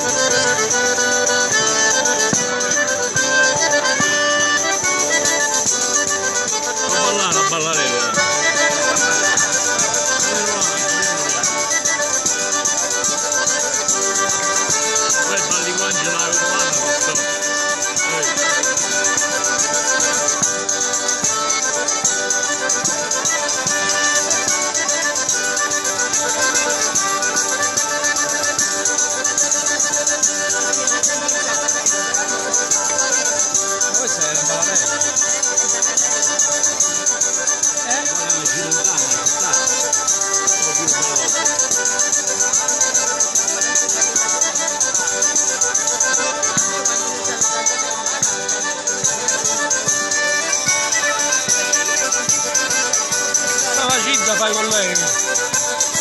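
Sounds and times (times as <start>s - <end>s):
button accordion dance tune: 0.0s - 56.0s.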